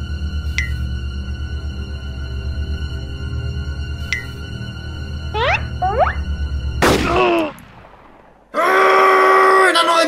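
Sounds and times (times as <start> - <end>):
background music: 0.0 - 8.2
sharp gunshot-like crack: 6.8 - 8.3.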